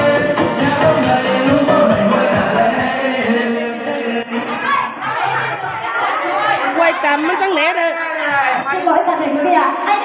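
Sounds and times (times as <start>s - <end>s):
crowd chatter: 1.2s - 10.0s.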